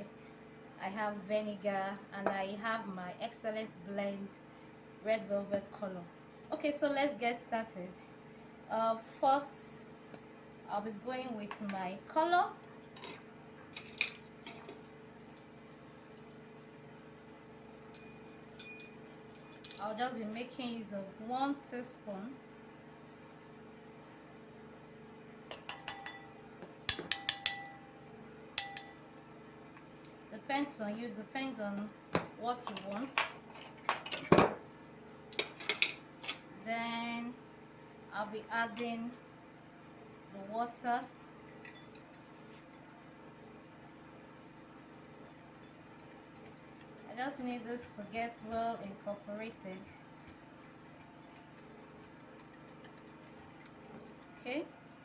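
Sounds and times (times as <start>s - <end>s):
faint steady hum: 0.0s - 55.0s
teaspoon clinking against glass: 26.9s - 27.8s.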